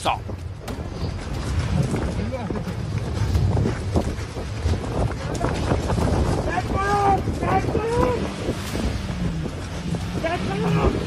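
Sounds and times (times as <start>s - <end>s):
vehicle engine and road rumble: 0.0s - 11.0s
wind buffeting microphone: 0.0s - 11.0s.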